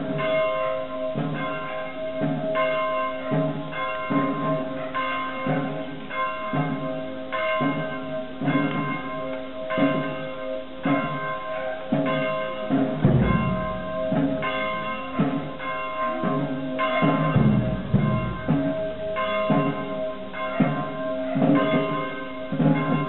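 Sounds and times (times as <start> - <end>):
church bells ringing: 0.0 - 23.0
heavy low thud: 13.0 - 14.4, 17.0 - 19.7.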